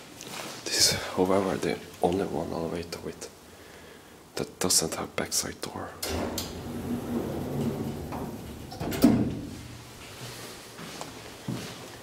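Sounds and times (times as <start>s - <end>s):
elevator door clunk: 6.0s - 10.0s
elevator door opening rumble: 6.0s - 10.0s.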